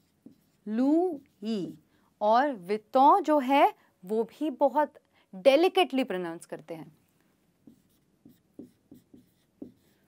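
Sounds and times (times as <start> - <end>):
marker pen writing on whiteboard: 0.0 - 1.8, 7.6 - 10.0.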